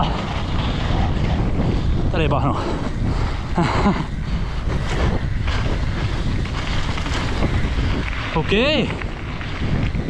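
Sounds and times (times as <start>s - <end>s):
bike rolling across dirt: 0.0s - 10.0s
wind rushing over microphone: 0.0s - 10.0s.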